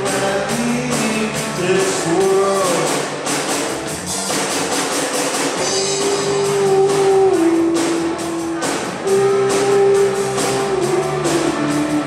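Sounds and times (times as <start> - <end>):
bass guitar: 0.0 - 12.0
drum kit beat: 0.0 - 12.0
electric guitar long notes: 5.6 - 12.0.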